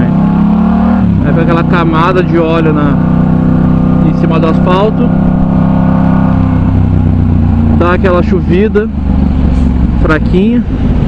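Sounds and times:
city traffic: 0.0s - 11.0s
motorcycle engine running: 0.0s - 11.0s.

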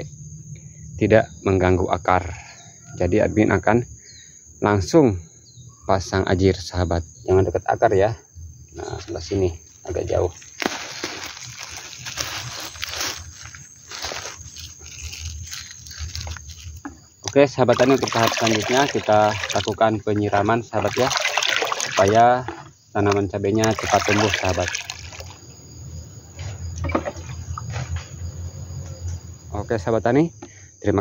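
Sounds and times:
stake scraping into soil: 10.4s - 19.8s
water splashing on plants: 10.6s - 13.2s, 17.3s - 22.4s, 23.0s - 25.4s.

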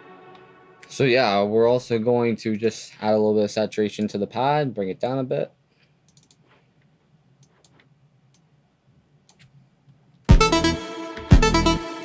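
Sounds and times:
computer mouse clicks: 6.1s - 6.6s, 7.4s - 8.5s, 9.3s - 9.6s.

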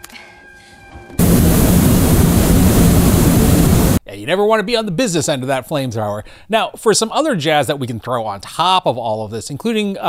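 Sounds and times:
flamethrower roar: 1.2s - 4.0s.

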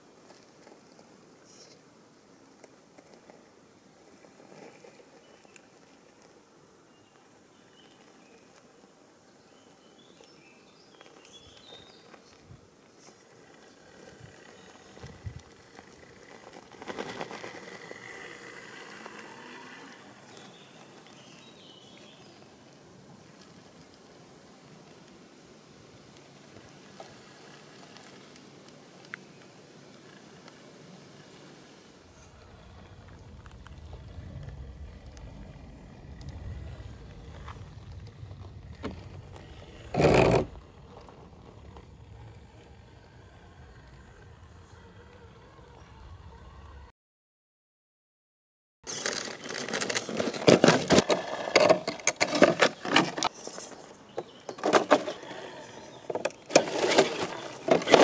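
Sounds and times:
tyres scrabbling on rock: 11.0s - 21.7s, 32.2s - 42.6s, 48.9s - 58.0s
electric motor and gears whining: 13.2s - 20.8s, 32.1s - 46.9s, 48.9s - 58.0s
wind rumble on microphone: 15.0s - 15.7s, 32.2s - 44.7s.

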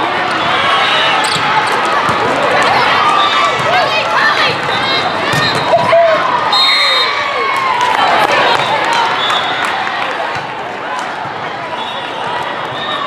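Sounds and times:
crowd shouting in a hall: 0.0s - 13.0s
volleyball hits: 1.2s - 6.2s.

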